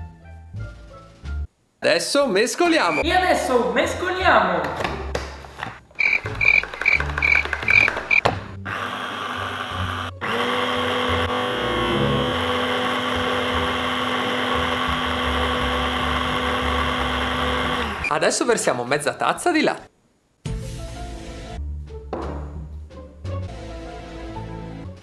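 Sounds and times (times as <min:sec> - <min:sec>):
mini chopper motor running: 0:06.8 - 0:18.1
short high pulses: 0:11.2 - 0:12.8.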